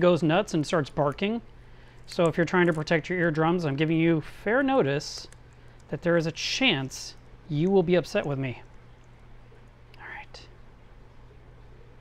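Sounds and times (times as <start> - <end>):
steady low hum: 0.0 - 12.0
person whispering: 9.9 - 10.6.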